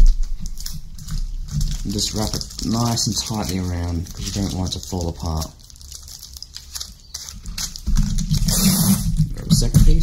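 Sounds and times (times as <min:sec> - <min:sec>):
tape dispenser handling: 0:00.0 - 0:09.5
sticky tape pulled off roll: 0:05.4 - 0:09.5.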